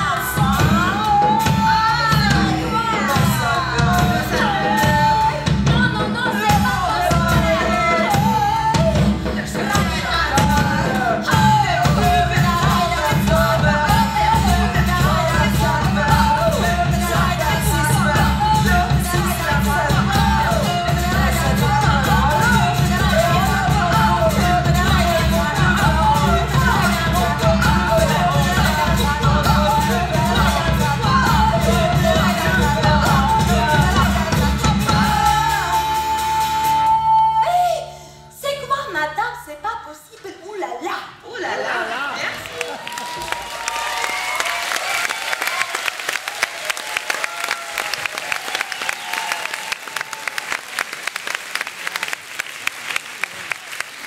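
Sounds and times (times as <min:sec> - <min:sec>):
band accompaniment: 0:00.0 - 0:40.2
cabaret singing: 0:00.0 - 0:51.4.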